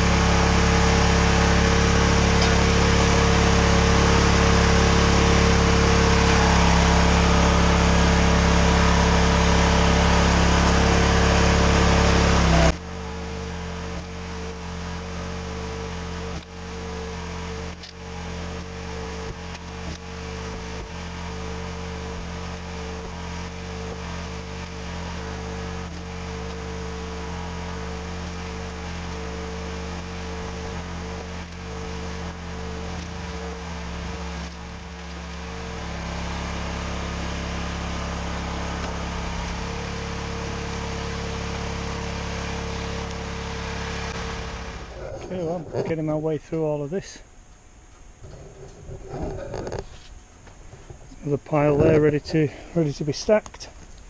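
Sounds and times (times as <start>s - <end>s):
log splitter motor humming: 0.0s - 54.0s.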